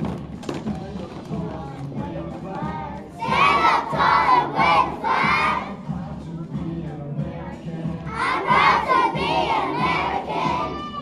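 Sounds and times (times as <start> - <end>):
children chanting in unison: 2.6 - 5.8, 8.1 - 11.0.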